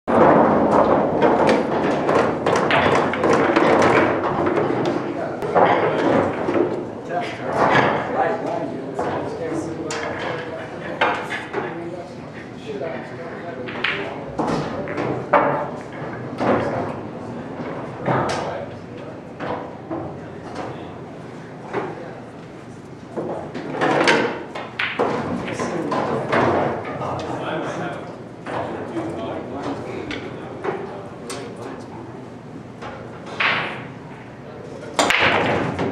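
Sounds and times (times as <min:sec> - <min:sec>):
pool balls clacking: 0:00.1 - 0:11.9, 0:13.0 - 0:21.0, 0:23.0 - 0:31.6, 0:32.8 - 0:35.9
crowd chatter: 0:02.7 - 0:35.9.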